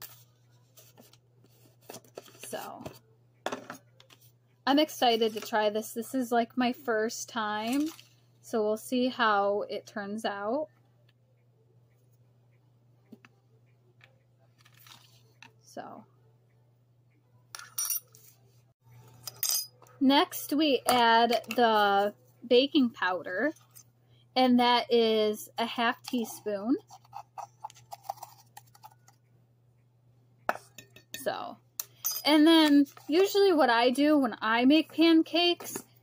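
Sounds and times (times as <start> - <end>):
low steady hum: 0.0 - 36.0
kitchenware clinking: 17.6 - 18.2, 19.1 - 19.9, 30.5 - 33.0
measuring spoon scraping and tapping: 26.0 - 29.2.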